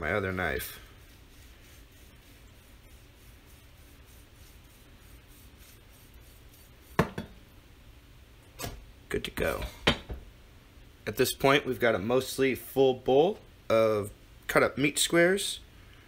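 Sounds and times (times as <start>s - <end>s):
knocks on cutting board: 7.0s - 7.3s.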